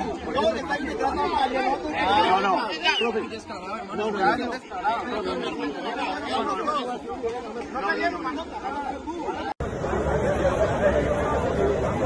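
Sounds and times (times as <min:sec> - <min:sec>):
men talking in a crowd: 0:00.0 - 0:12.0.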